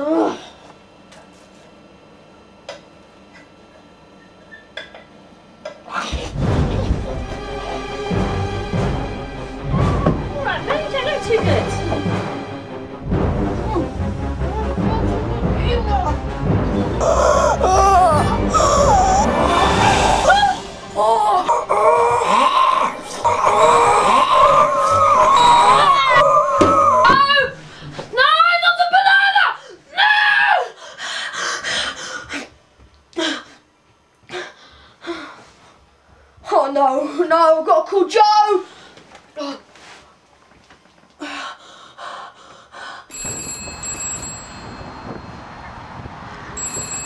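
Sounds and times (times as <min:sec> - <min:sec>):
low rumble: 0:06.1 - 0:22.6
woman screaming: 0:17.1 - 0:27.6, 0:28.2 - 0:30.8
wind buffeting the microphone: 0:44.6 - 0:46.6.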